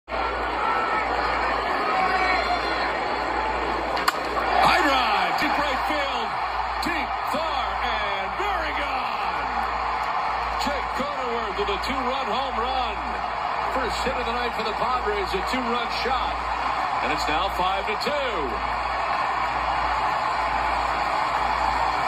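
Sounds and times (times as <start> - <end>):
crowd cheering: 0.0 - 22.0
crowd noise: 0.0 - 22.0
bat hitting baseball: 4.0 - 4.7.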